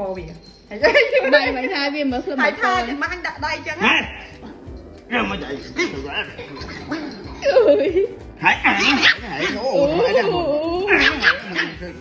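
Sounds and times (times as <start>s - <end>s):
puppy whining and howling: 4.0s - 12.0s.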